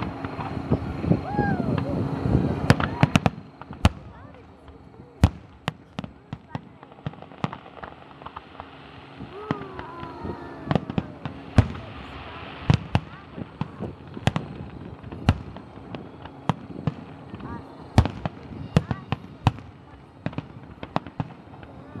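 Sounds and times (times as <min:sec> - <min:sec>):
fireworks bursting with sharp bangs: 0:00.0 - 0:22.0.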